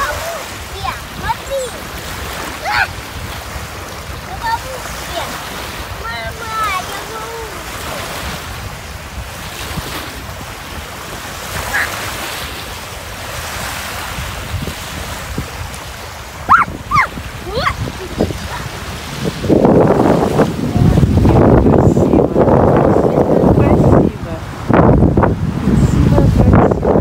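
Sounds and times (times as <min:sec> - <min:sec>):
small waves washing on shore: 0:00.0 - 0:27.0
wind buffeting microphone: 0:00.0 - 0:27.0
short rising high calls: 0:16.4 - 0:17.2.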